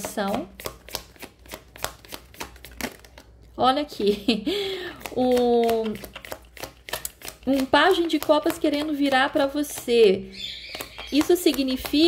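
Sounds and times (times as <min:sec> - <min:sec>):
cards being shuffled: 0:00.0 - 0:03.6, 0:04.9 - 0:10.1, 0:10.7 - 0:12.0.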